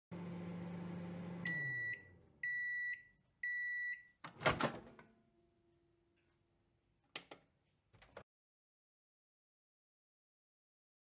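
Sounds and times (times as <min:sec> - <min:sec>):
microwave oven humming: 0:00.1 - 0:03.6.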